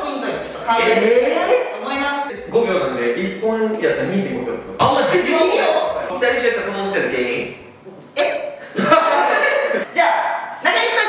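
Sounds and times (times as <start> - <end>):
surprised exclamation: 4.8 - 5.2
sharp high-pitched vocal sound: 4.8 - 5.3, 8.2 - 8.4
people talking: 4.8 - 5.9.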